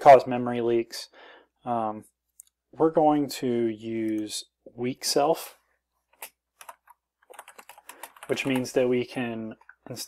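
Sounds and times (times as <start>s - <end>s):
computer keyboard keystrokes: 6.2s - 8.8s.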